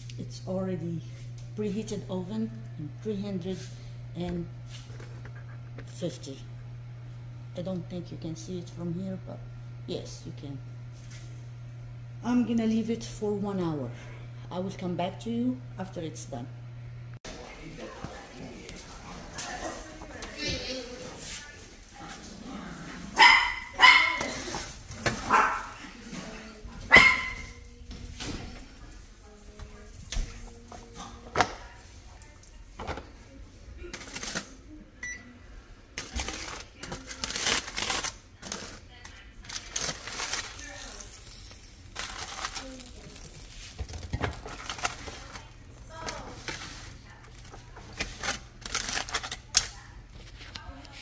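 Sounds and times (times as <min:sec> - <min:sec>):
foil and paper crinkling: 0:36.0 - 0:51.0.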